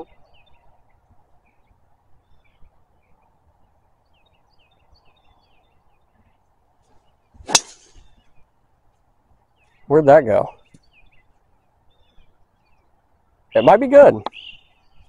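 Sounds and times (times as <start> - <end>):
golf club striking ball: 7.4 - 8.0.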